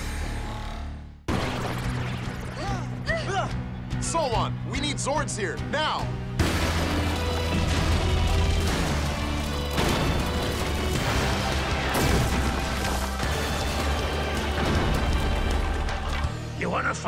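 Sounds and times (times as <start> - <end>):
dramatic music: 0.0 - 17.0
crash and explosion effects: 1.3 - 2.6, 6.4 - 16.3.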